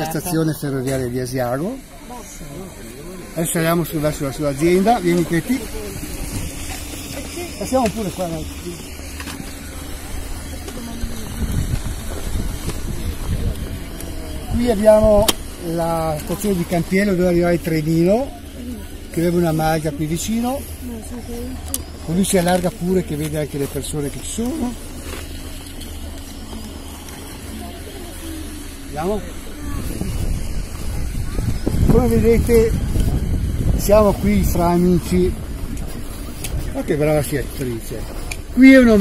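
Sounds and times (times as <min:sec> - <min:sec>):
faint voices: 0:00.0 - 0:39.0
low hum: 0:00.0 - 0:39.0
low rumble: 0:08.5 - 0:38.6
wind buffeting microphone: 0:08.9 - 0:17.1, 0:28.4 - 0:38.6.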